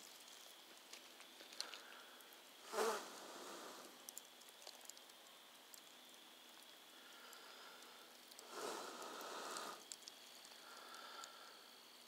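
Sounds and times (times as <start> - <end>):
campfire embers crackling: 0.0 - 12.0.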